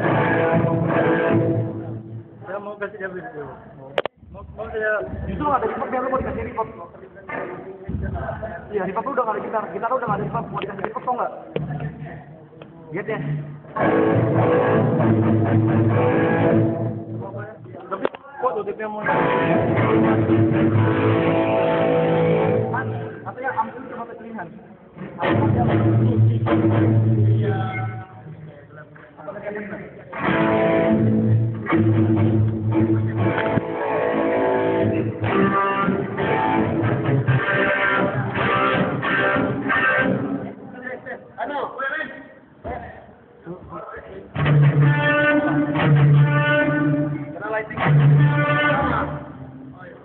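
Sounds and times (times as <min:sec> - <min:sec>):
guitar playing loud chords: 0:00.0 - 0:02.4, 0:13.2 - 0:17.4, 0:19.0 - 0:23.3, 0:25.0 - 0:28.0, 0:30.1 - 0:40.6, 0:44.3 - 0:49.8.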